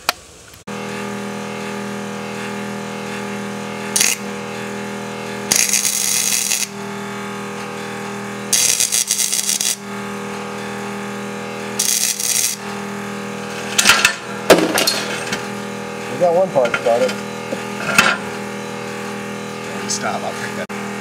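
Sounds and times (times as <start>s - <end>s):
arc welder crackling: 0.0s - 21.0s
steady electrical hum: 0.0s - 21.0s.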